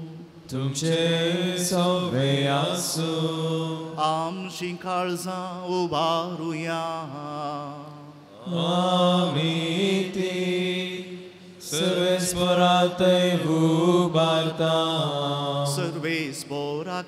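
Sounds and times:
man chanting into a microphone: 0:00.0 - 0:10.8, 0:11.6 - 0:17.0.

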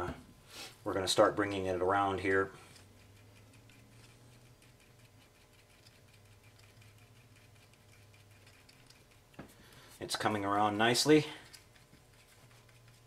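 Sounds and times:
air conditioner hum: 0:00.0 - 0:13.0
stir rod ticking in paper cup: 0:02.9 - 0:09.4.

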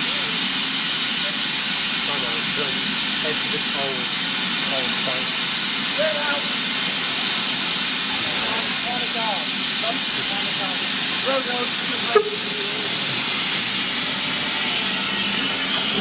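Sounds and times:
steam hissing: 0:00.0 - 0:16.0.

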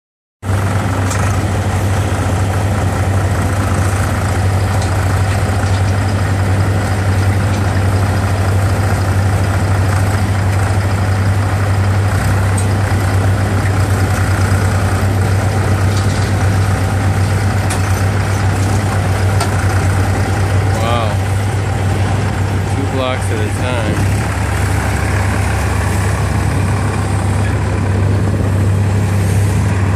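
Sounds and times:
forklift engine humming: 0:00.4 - 0:29.9.

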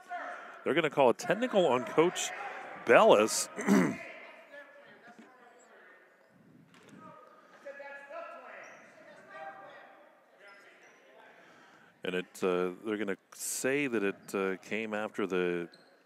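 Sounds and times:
faint echoing voices: 0:00.0 - 0:15.7.

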